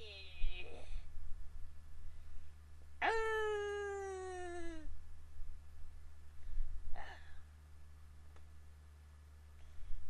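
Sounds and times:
long whining vocal sound: 3.0 - 5.0.

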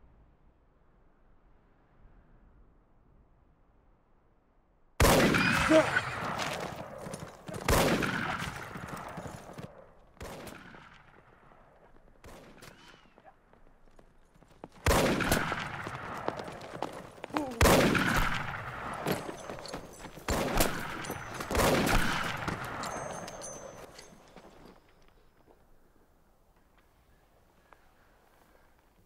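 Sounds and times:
echoing gunshots: 5.0 - 11.6, 14.8 - 24.3.

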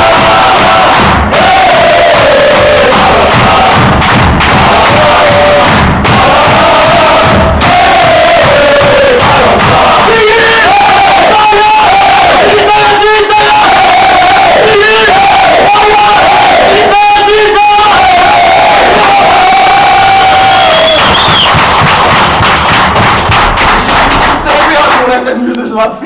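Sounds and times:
men chanting in unison: 0.0 - 20.4
shouting and cheering: 0.0 - 22.4.

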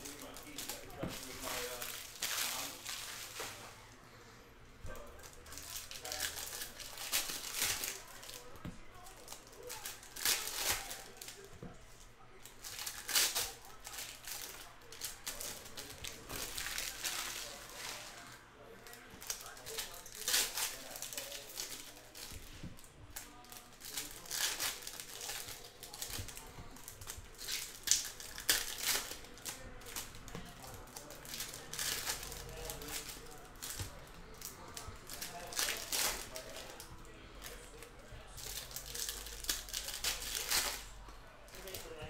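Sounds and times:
foil wrappers crinkling and tearing: 0.0 - 3.7, 4.8 - 42.0.

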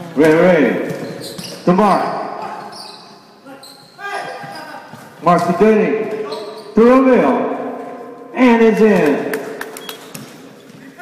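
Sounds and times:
basketball bouncing: 0.2 - 2.7, 7.6 - 10.8
shoe squeaks on hardwood court: 0.8 - 5.2, 6.0 - 6.8, 9.7 - 11.0
person speaking: 3.4 - 9.6.

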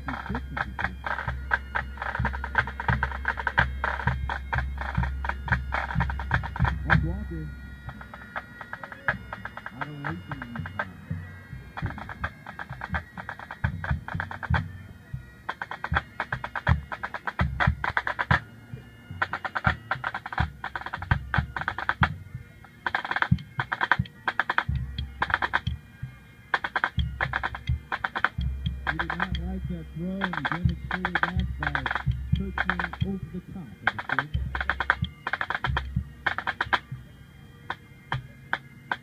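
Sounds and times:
tenor and bass drums beating: 0.0 - 37.1, 37.7 - 39.0
snare drum rolls: 26.6 - 33.2.

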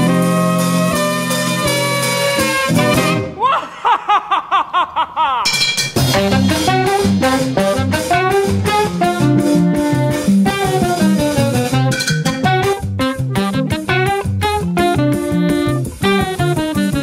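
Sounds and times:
swing band playing: 0.0 - 3.4, 5.5 - 17.0
steady drum beat: 5.5 - 16.6.

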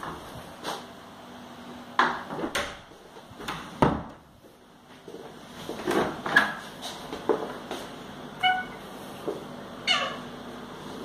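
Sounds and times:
door squeaking: 8.4 - 8.8, 9.8 - 10.2.

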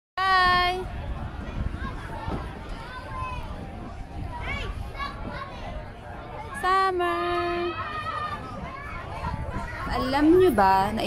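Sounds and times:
children shouting: 1.4 - 6.6, 7.3 - 10.0.

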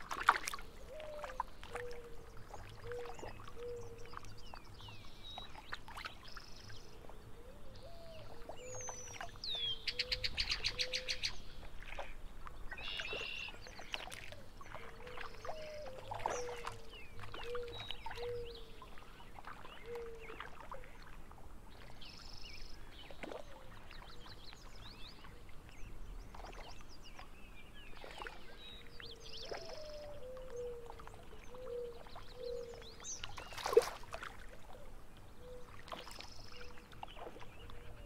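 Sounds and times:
faint water splashes: 0.0 - 38.0
birdsong with whistles: 7.8 - 11.4, 12.8 - 13.6.

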